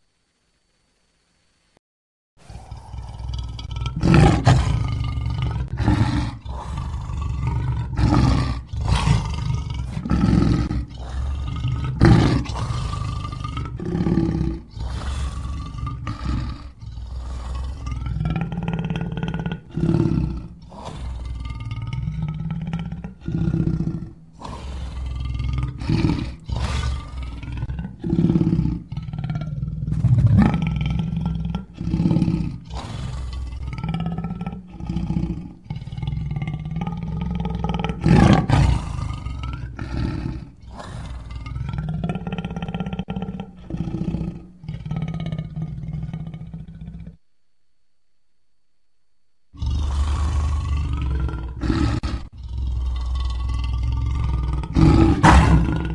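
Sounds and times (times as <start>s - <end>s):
dinosaur roars and growls: 2.4s - 47.2s, 49.6s - 55.9s.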